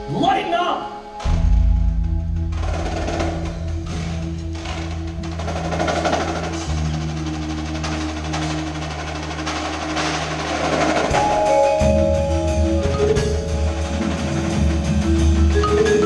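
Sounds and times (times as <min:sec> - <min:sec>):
low bass notes: 0:01.0 - 0:16.0
mallet and drum strokes: 0:01.2 - 0:16.0.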